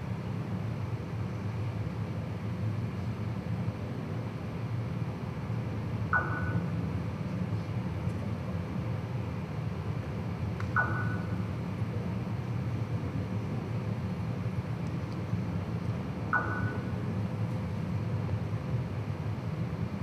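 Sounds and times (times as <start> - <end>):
low room hum: 0.0 - 20.0.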